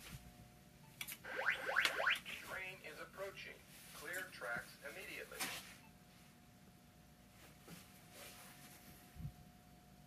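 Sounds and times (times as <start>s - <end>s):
rising electronic sweep tones: 1.2s - 2.5s
recorded voice warning: 2.1s - 5.6s.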